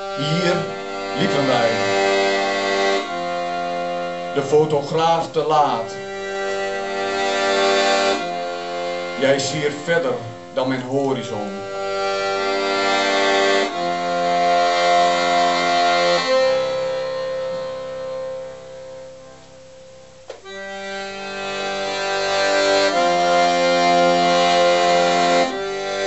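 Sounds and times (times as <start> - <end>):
accordion playing chords: 0.0 - 26.0.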